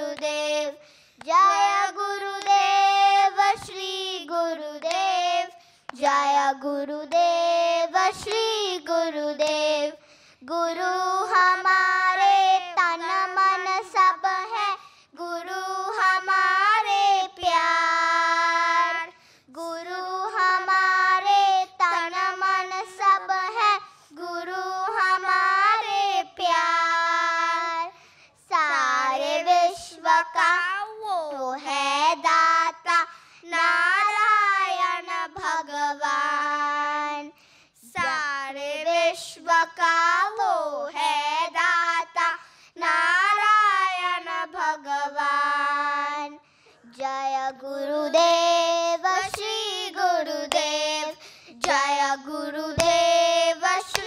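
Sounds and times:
children singing into microphones: 0.0s - 54.0s.

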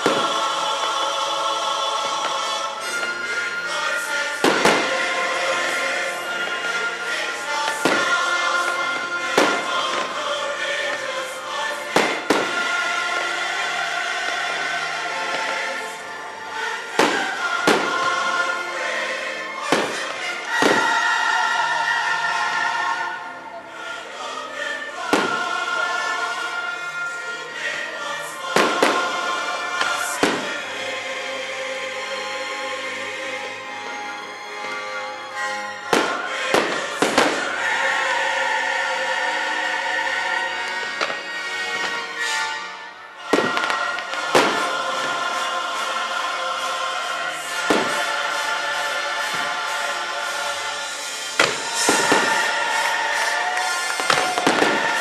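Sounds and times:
fireworks bursting: 0.0s - 22.4s, 25.0s - 26.5s, 28.2s - 30.9s, 35.4s - 38.9s, 43.2s - 55.0s
choral music: 0.0s - 55.0s.

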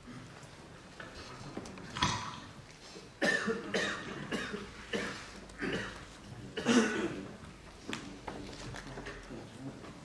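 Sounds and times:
person coughing: 3.2s - 7.3s.

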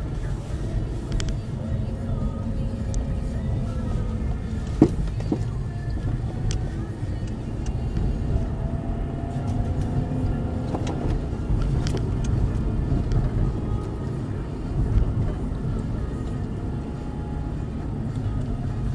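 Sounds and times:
car road and engine rumble: 0.0s - 18.9s.

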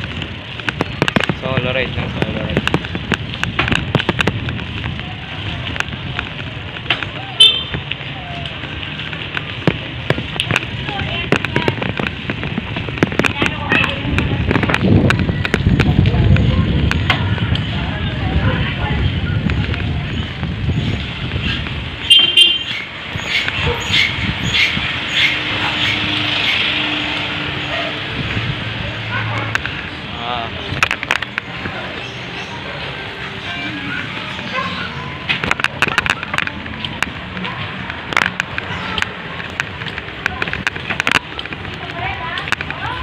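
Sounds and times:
traffic passing: 0.0s - 43.0s
wind rumbling on microphone: 0.0s - 43.0s.

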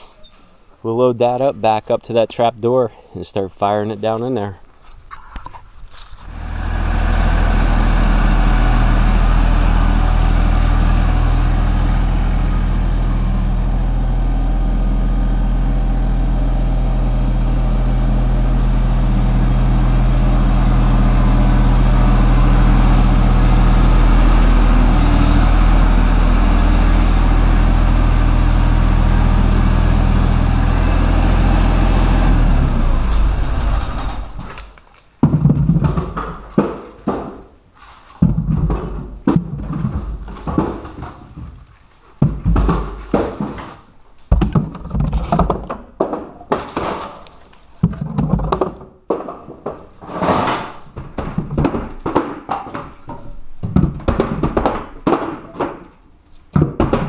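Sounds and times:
tractor engine humming: 6.2s - 34.8s
sharp knocks: 35.2s - 37.5s, 42.2s - 47.2s, 47.8s - 57.0s.

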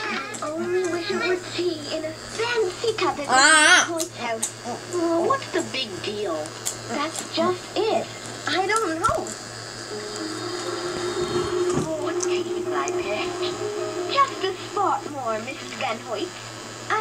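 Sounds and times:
faint low hum: 6.1s - 17.0s
cartoon music steady notes: 9.9s - 15.5s.

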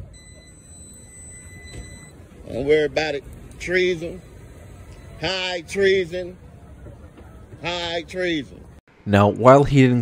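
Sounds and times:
high-pitched electronic beep: 0.0s - 2.9s.

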